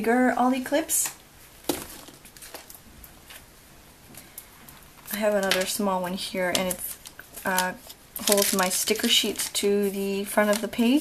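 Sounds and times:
soft paper rustle: 1.7 - 3.5, 4.6 - 11.0.

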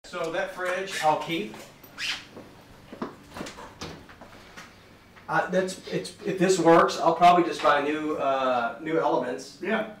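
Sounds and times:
footsteps on hard floor: 2.3 - 3.6.

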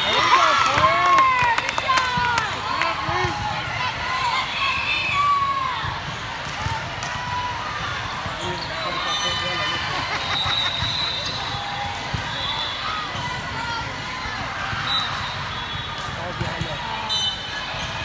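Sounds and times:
many voices talking and calling: 0.0 - 18.0.

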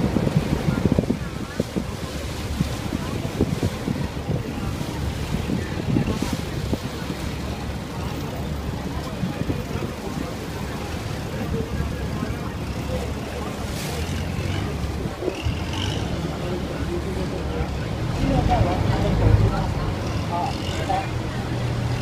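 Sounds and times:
boat engine rumbling: 0.0 - 22.0
passing boat rumble: 0.0 - 22.0
water noise: 0.0 - 22.0
wind: 0.0 - 22.0.

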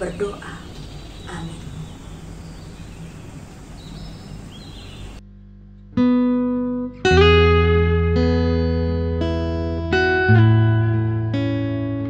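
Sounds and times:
low background noise: 0.0 - 5.2
guitar chord ringing: 6.0 - 12.0.

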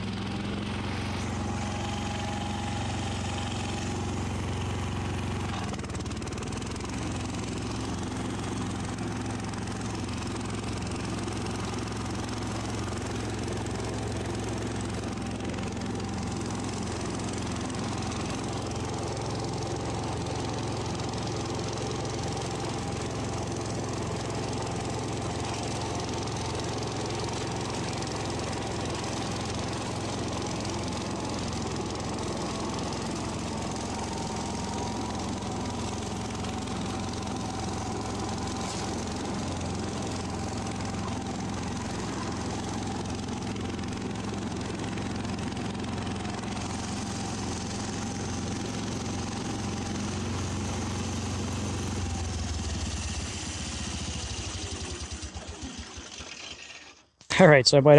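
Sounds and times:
garden tractor engine running: 0.0 - 57.9.

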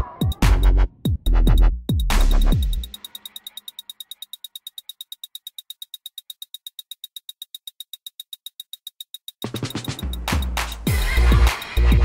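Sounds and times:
high-pitched electronic ticking pulse: 1.3 - 12.0.

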